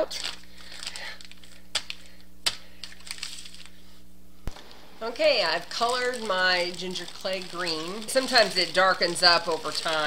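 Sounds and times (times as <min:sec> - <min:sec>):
plastic bag crinkling: 0:00.0 - 0:02.2, 0:02.8 - 0:03.8, 0:04.6 - 0:10.0.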